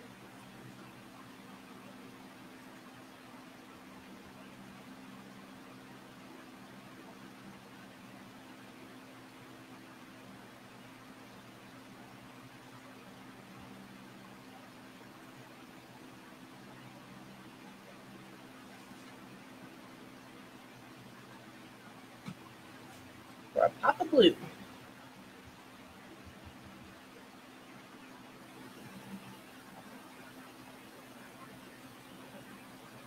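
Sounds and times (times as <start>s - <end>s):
faint low hum: 0.0s - 33.0s.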